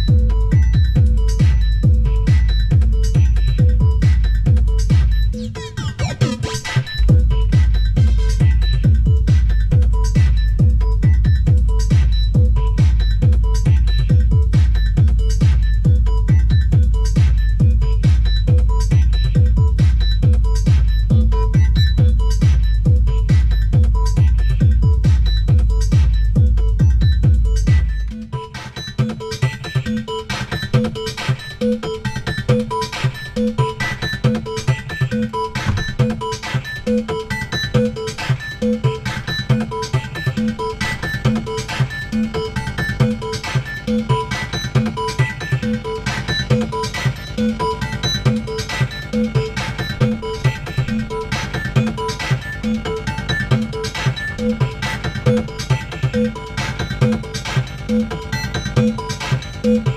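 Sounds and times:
plucked synthesizer notes: 0.0 - 28.4, 31.6 - 59.9
drum machine beat: 0.0 - 59.9.

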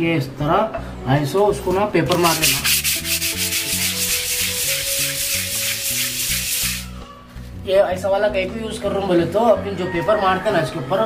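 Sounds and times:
background music with low notes: 0.0 - 11.0
sandpaper rubbing on plaster wall: 2.1 - 7.0.

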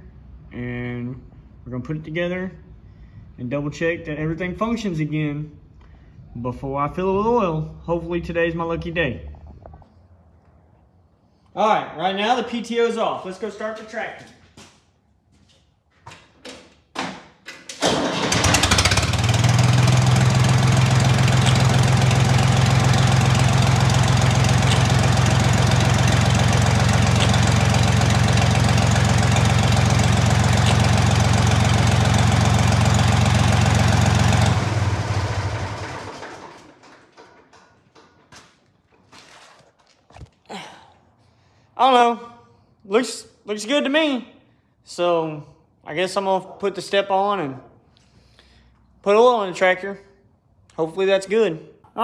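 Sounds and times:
engine starting: 17.6 - 19.8, 34.7 - 38.4
engine running down: 17.8 - 37.6
tractor engine idling: 17.8 - 38.2.

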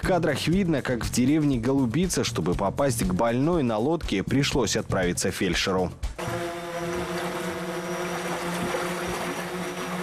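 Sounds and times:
outboard motor running: 6.2 - 10.0
water splashing from wading: 6.2 - 10.0.

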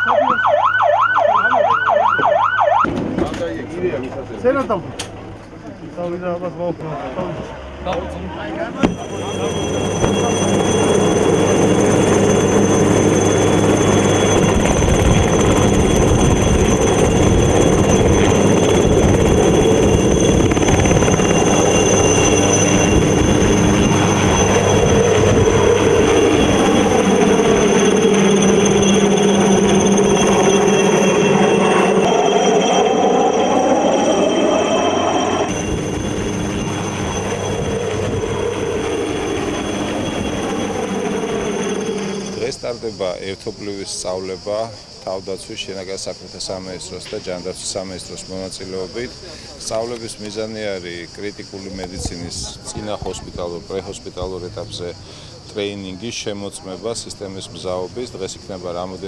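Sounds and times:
helicopter rotor noise: 8.7 - 59.0
helicopter turbine whine: 8.7 - 59.0.

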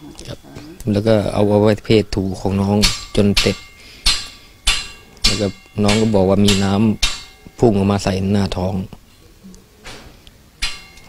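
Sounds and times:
person speaking: 0.0 - 3.7, 5.1 - 9.8
sharp ringing knocks: 2.4 - 8.2, 10.6 - 11.0.

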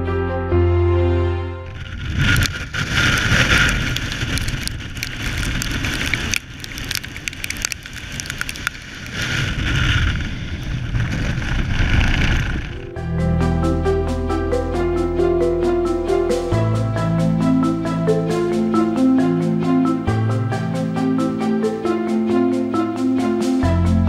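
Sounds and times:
background music: 0.0 - 1.7, 12.8 - 24.0
gusty wind buffeting microphone: 1.7 - 14.3.

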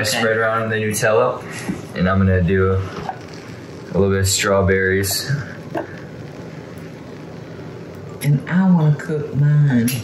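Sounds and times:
kitchen background hiss: 0.0 - 10.0.

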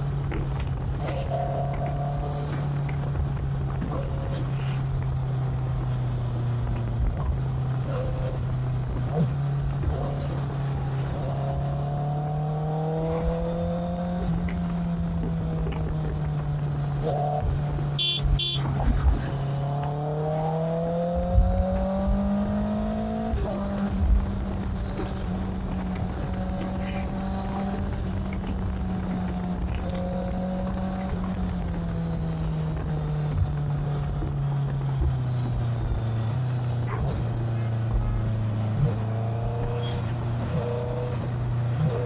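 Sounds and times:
motorcycle engine running: 0.0 - 42.0
road and wind noise: 0.0 - 42.0
short high beeps: 18.0 - 18.6.

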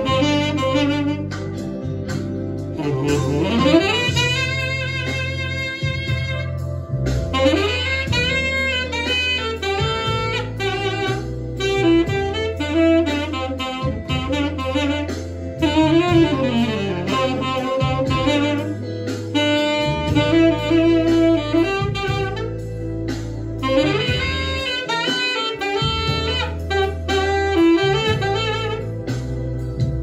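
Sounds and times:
backing track with bass line: 0.0 - 30.0
tenor saxophone melody: 0.0 - 30.0.

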